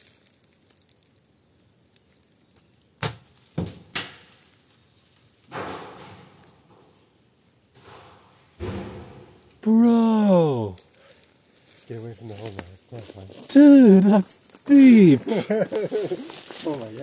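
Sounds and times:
object striking rock while falling: 3.0 - 4.4.

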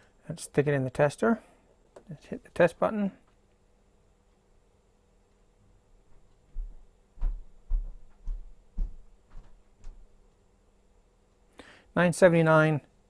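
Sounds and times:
soft low thumps with clicks: 5.3 - 10.5.

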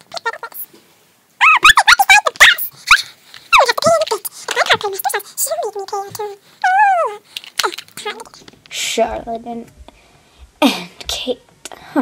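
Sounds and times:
high-pitched yips and squeals: 1.4 - 3.9.

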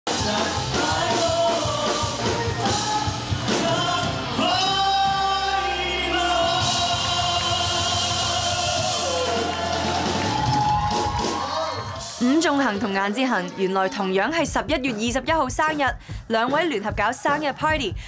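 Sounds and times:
group singing into microphones: 0.1 - 9.9.

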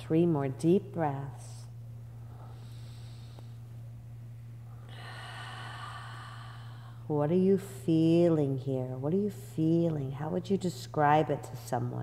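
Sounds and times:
low hum: 0.0 - 12.0
woman breathing out deeply: 4.7 - 7.1.

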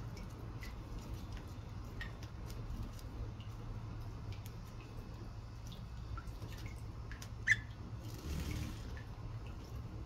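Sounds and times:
water dripping: 0.0 - 10.0
bird shaking feathers: 8.0 - 9.0.

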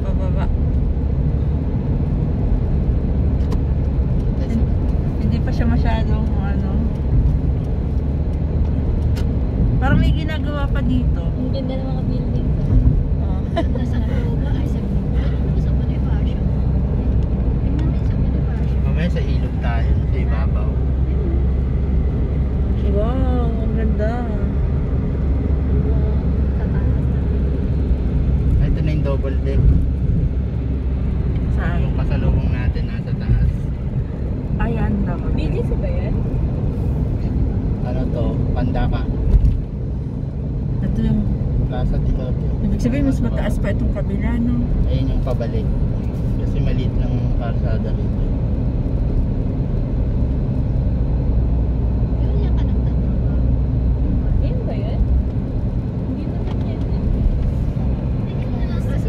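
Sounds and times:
road and engine rumble in car: 0.0 - 59.0.

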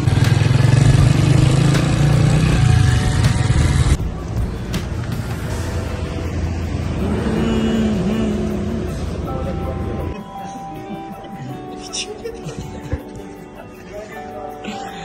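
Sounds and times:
motorcycle engine running: 0.0 - 9.5
music: 0.0 - 15.0.

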